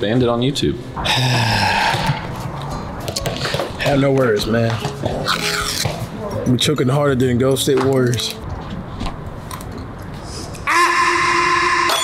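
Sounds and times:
person sighing: 0:01.0 - 0:02.2.

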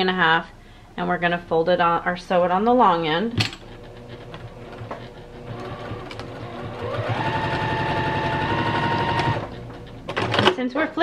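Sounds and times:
sewing machine stitching: 0:03.4 - 0:10.7.

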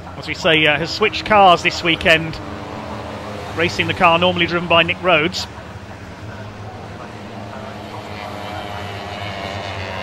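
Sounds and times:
small racing car engines buzzing: 0:00.0 - 0:10.0.

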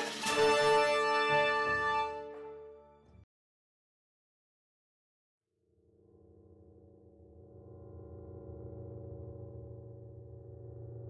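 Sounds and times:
electronic drone of low tones: 0:05.6 - 0:11.0.

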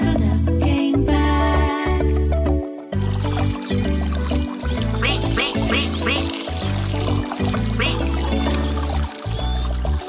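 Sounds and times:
upbeat children's song music: 0:00.0 - 0:10.0
cartoon duck quacking: 0:04.9 - 0:06.4, 0:07.8 - 0:08.1.

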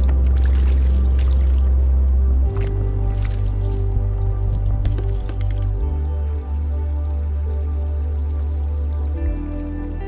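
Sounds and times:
low bass notes: 0:00.0 - 0:10.0.

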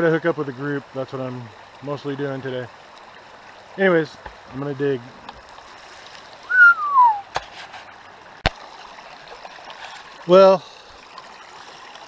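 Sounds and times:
falling whistle-like note: 0:06.5 - 0:07.2.

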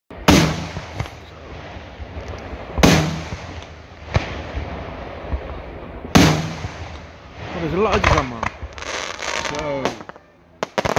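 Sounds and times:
continuous rumble: 0:00.1 - 0:10.9.

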